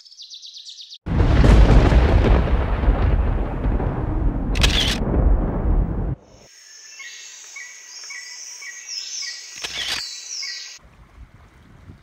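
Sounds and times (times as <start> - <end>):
crickets chirping: 6.2 - 10.5
steady high insect buzz: 6.2 - 10.5.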